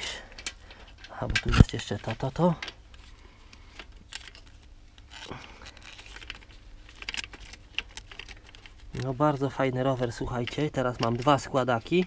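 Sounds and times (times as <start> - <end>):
bicycle parts clicking and tapping: 0.0 - 2.9, 10.0 - 12.0.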